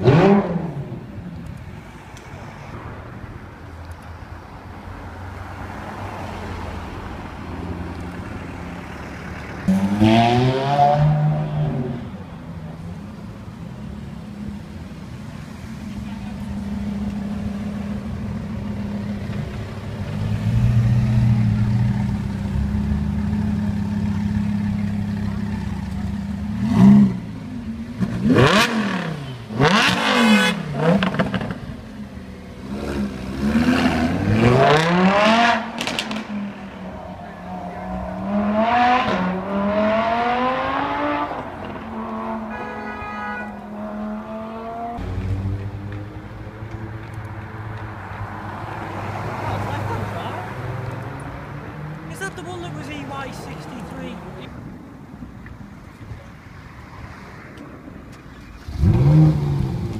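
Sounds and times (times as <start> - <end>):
sports car engine revving: 0.0 - 1.1, 9.4 - 12.0, 16.3 - 31.8, 32.6 - 36.6, 37.4 - 42.5, 58.5 - 59.9.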